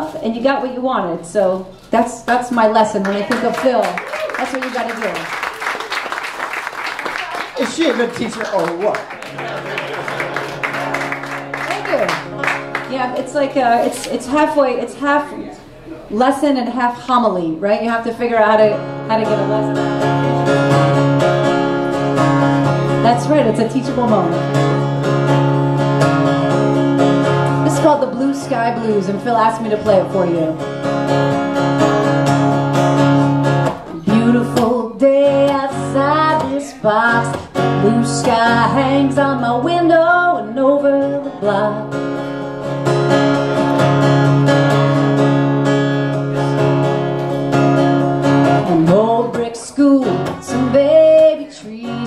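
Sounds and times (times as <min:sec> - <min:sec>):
acoustic guitar strumming: 0:07.4 - 0:15.4, 0:16.6 - 0:52.0.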